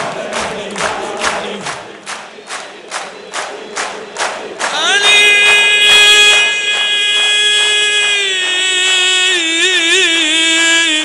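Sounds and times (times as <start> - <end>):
man singing long vowel: 4.7 - 11.0.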